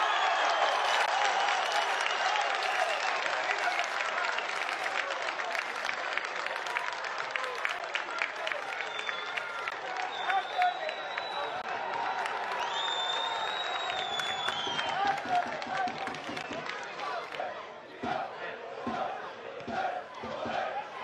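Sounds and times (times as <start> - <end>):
crowd shouting: 0.0 - 4.0, 14.8 - 21.0
crowd clapping: 0.0 - 17.5.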